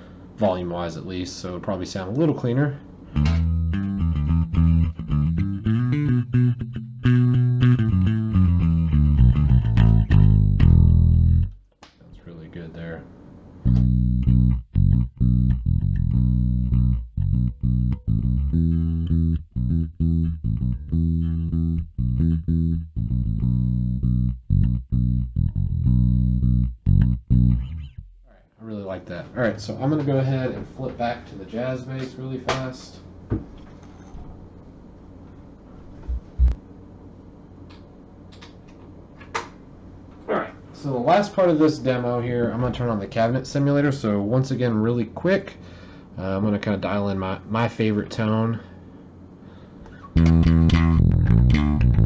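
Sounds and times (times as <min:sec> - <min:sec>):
electric bass notes: 0:03.0 - 0:11.7, 0:13.6 - 0:28.4, 0:35.8 - 0:36.6, 0:49.9 - 0:52.0.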